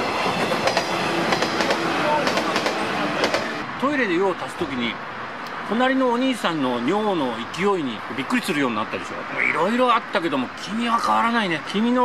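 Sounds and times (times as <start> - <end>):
wheels clacking over rails: 0.0 - 3.6
train passing: 0.0 - 11.1.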